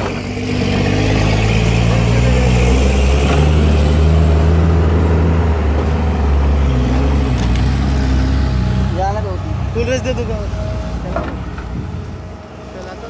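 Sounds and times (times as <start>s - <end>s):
excavator diesel engine under load: 0.0s - 13.0s.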